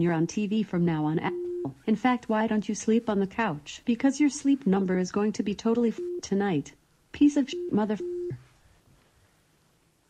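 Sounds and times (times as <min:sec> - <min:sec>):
censor bleep tone: 0:01.3 - 0:01.8, 0:05.9 - 0:06.3, 0:07.4 - 0:08.4.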